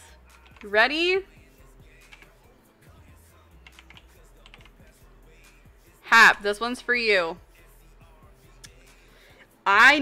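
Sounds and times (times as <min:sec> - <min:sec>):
quiet background music: 0:00.0 - 0:10.0
typing on computer keyboard: 0:00.4 - 0:00.7, 0:02.0 - 0:02.4, 0:03.6 - 0:04.8.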